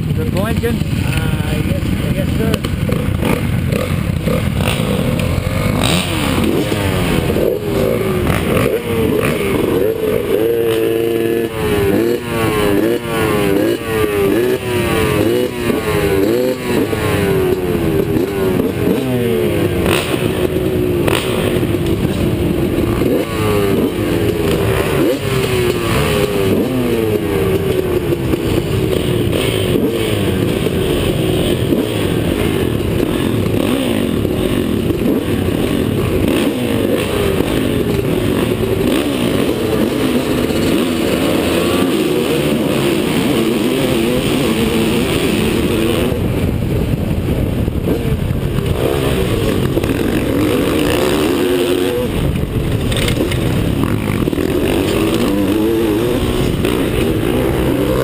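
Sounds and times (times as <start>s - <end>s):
motocross bikes revving: 0.0s - 58.0s.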